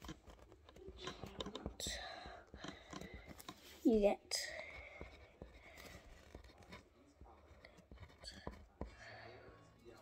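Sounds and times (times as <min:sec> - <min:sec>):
pen scratching on paper: 0:04.7 - 0:09.0.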